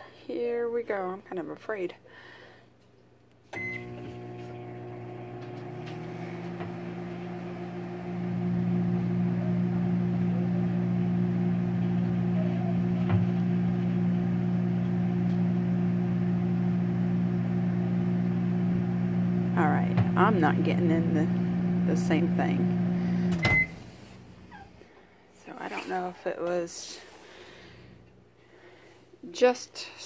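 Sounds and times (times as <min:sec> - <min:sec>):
microwave oven switch: 0:03.6 - 0:07.3
microwave oven humming: 0:03.6 - 0:24.7.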